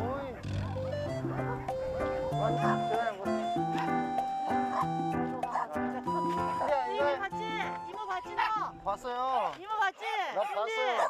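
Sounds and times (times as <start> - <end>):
background music with held notes: 0.0 - 9.3
dogs barking: 0.0 - 9.6, 10.4 - 11.0.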